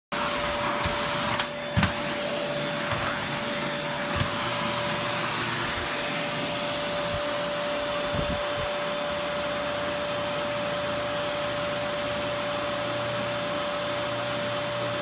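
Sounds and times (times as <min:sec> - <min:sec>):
vacuum cleaner running: 0:00.1 - 0:15.0.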